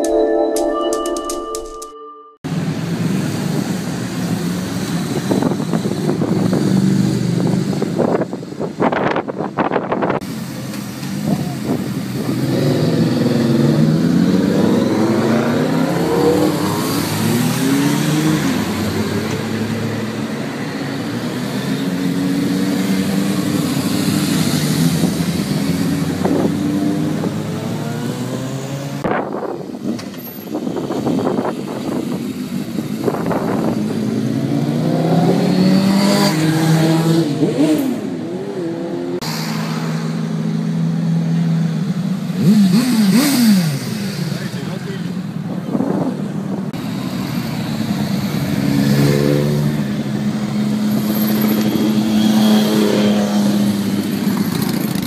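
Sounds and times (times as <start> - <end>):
motorcycles revving past: 11.9 - 30.1, 32.0 - 44.8, 46.8 - 55.0.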